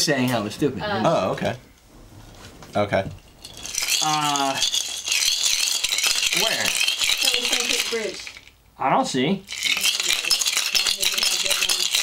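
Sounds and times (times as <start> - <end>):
ice rattling in shaker: 3.2 - 8.6, 9.4 - 12.0.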